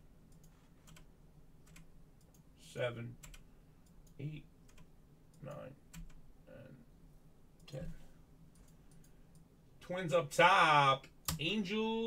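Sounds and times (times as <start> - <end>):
computer mouse clicks: 0.3 - 2.4, 8.5 - 9.5.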